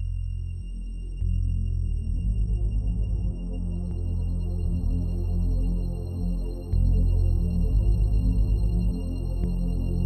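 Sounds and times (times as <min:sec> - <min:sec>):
droning electronic ambient music: 0:00.0 - 0:10.0.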